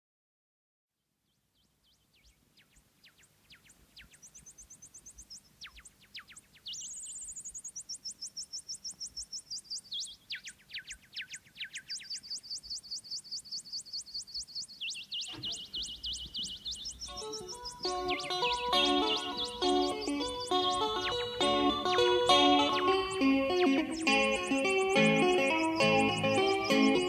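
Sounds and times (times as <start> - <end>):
synthesizer chirping downward sweeps: 15.3 - 27.0
low instruments: 17.1 - 27.0.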